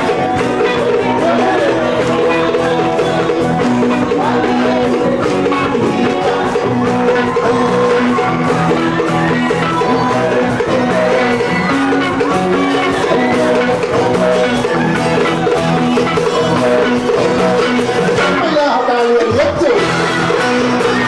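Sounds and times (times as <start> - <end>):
acoustic guitars: 0.0 - 21.0
bass guitar: 0.0 - 21.0
steady percussion: 0.0 - 21.0
voices singing: 0.0 - 21.0.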